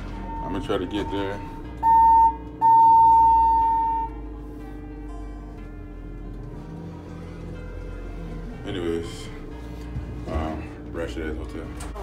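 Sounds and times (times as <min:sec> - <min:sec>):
elevator electronic beep: 0:00.0 - 0:04.4
background music: 0:00.0 - 0:12.0.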